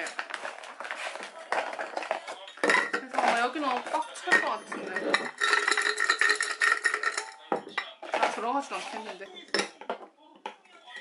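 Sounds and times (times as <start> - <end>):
plastic capsules clattering into glass jar: 1.5 - 9.7.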